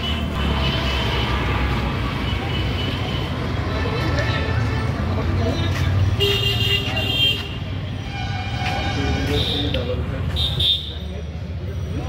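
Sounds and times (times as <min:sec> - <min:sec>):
passing vehicles rumble: 0:00.0 - 0:12.0.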